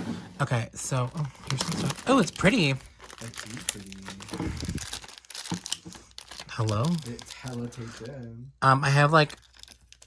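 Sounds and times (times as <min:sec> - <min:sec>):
plastic packaging crinkling: 0:01.0 - 0:08.3, 0:09.1 - 0:10.0.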